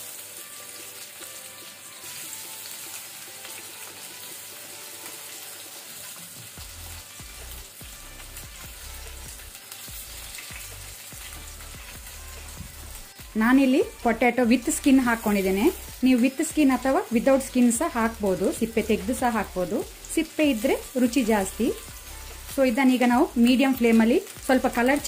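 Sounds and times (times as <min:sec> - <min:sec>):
potatoes sizzling in hot oil: 0:00.0 - 0:25.0.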